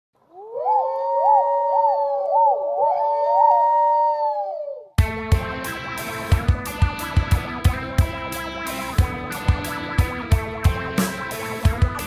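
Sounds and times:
electric guitar music with drums: 5.0 - 12.0.

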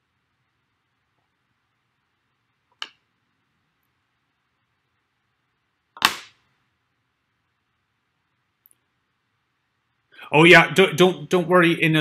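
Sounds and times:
sharp knock or click: 6.0 - 6.4.

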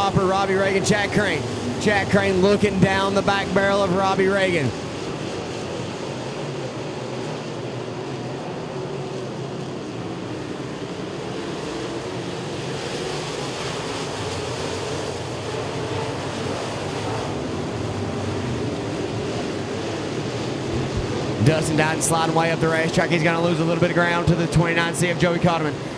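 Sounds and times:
race car engines: 0.0 - 25.9.

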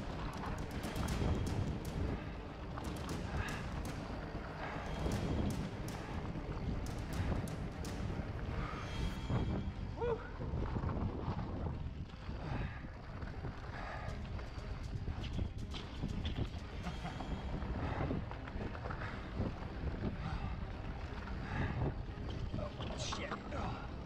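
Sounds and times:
bike clicks and rattles: 0.0 - 9.5, 13.1 - 20.5.

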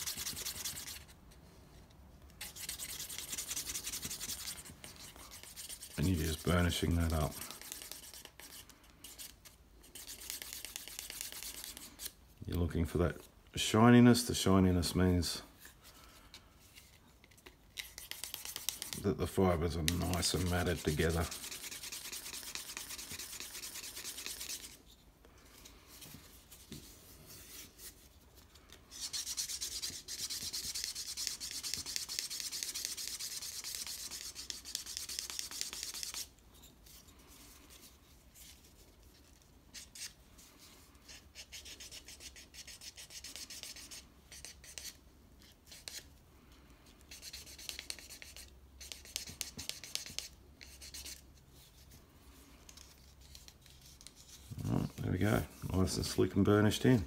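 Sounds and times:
stick rubbing on leather: 0.0 - 1.1, 2.4 - 12.2, 17.8 - 25.0.

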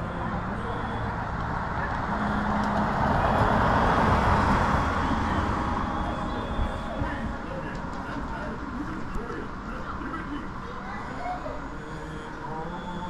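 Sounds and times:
car passing: 0.0 - 9.7
people talking: 0.0 - 13.0.

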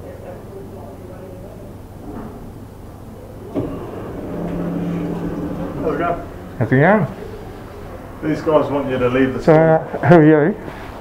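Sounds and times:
sliding door motor humming: 3.2 - 9.4.

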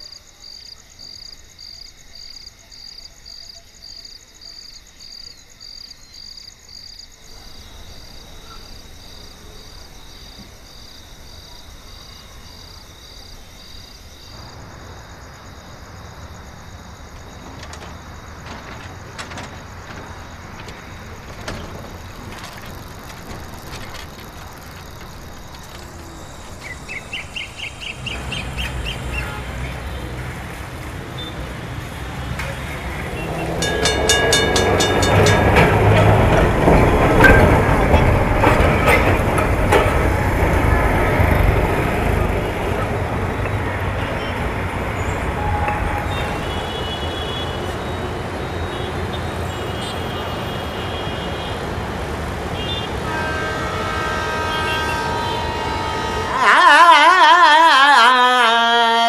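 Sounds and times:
tram rattling over rails: 0.0 - 58.6
city street background: 0.0 - 59.0
short horn toots: 53.0 - 58.5.

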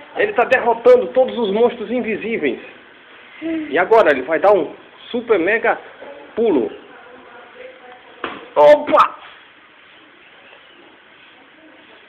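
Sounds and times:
steady low hiss: 0.0 - 12.0.

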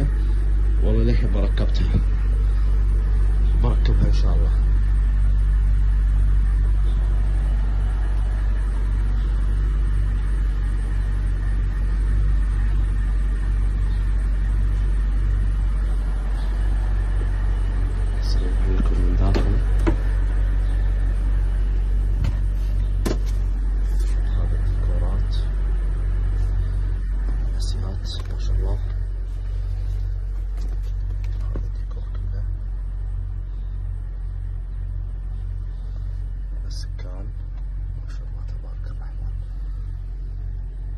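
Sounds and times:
car engine idling: 0.0 - 40.9.

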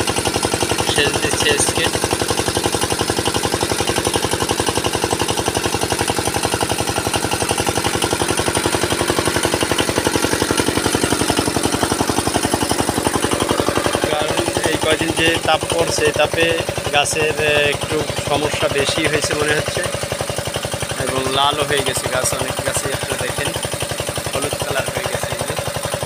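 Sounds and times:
diesel engine running: 0.0 - 26.0.

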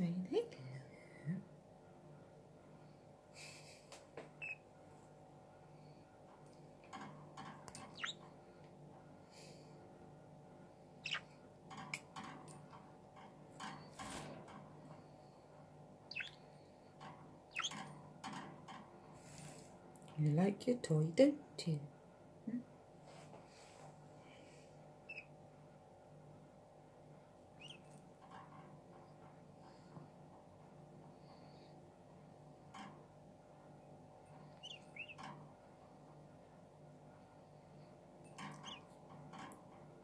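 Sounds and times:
budgerigar chirps: 4.4 - 4.6, 8.0 - 8.2, 11.0 - 11.3, 16.1 - 16.4, 17.5 - 17.8, 25.1 - 25.3, 27.6 - 27.8, 34.6 - 35.2, 38.6 - 38.8.

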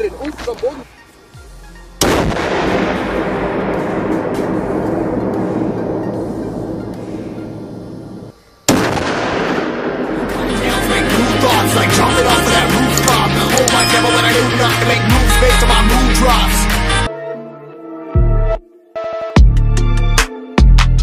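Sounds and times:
loud explosive blast: 2.0 - 10.4.

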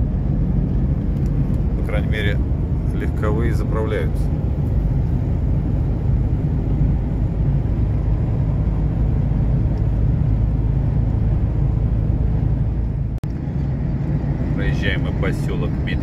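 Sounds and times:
diesel truck engine droning: 0.0 - 16.0
tyre and road noise: 0.0 - 16.0.

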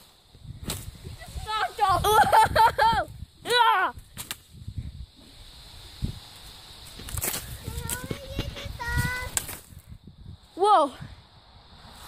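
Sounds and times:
child yelling: 1.4 - 2.4, 3.0 - 4.0, 7.6 - 9.4.

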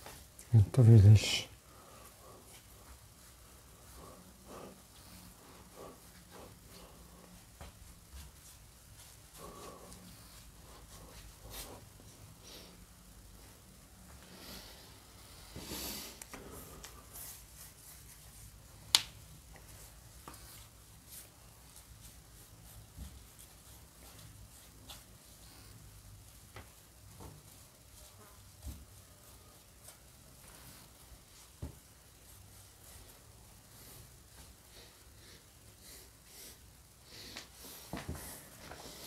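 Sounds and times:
paint brush rustle: 0.0 - 12.8, 13.4 - 39.0.

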